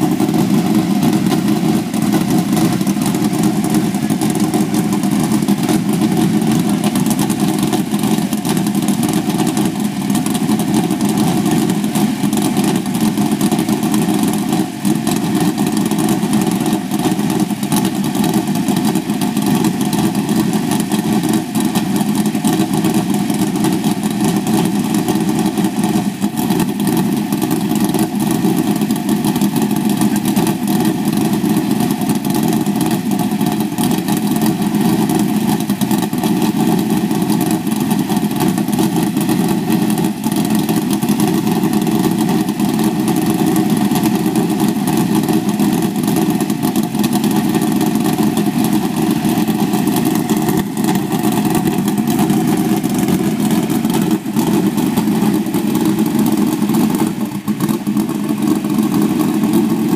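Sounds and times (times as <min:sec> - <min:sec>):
race car engine idling: 0:00.0 - 0:59.9.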